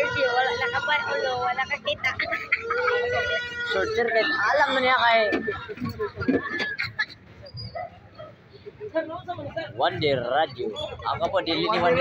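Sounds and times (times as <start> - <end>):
low crowd murmur: 0.0 - 12.0
small dog whimpering yips: 7.4 - 8.3.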